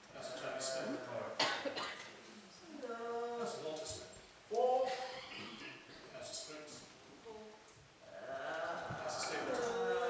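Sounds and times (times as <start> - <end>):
sharp cough: 1.4 - 2.1, 4.9 - 6.1.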